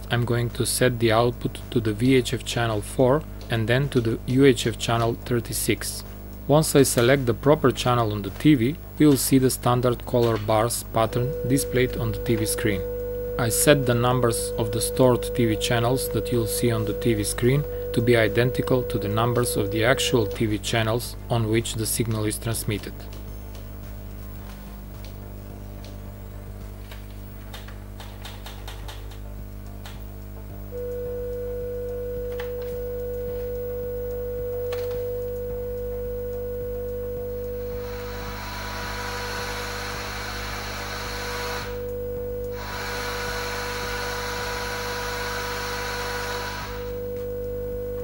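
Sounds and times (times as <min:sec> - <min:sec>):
low steady hum: 0:00.0 - 0:27.2, 0:29.2 - 0:48.0
test tone from speaker: 0:09.7 - 0:21.2, 0:30.8 - 0:40.0.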